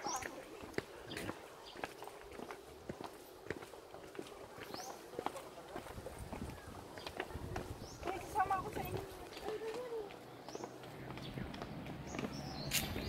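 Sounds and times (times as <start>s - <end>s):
footsteps on concrete: 0.0s - 13.0s.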